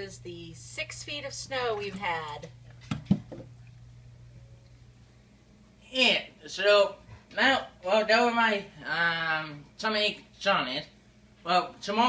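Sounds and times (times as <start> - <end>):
steady low hum: 0.0 - 11.7.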